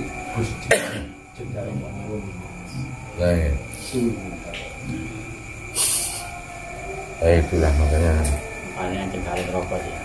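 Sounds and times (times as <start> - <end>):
man exhaling cigarette smoke: 5.7 - 6.3.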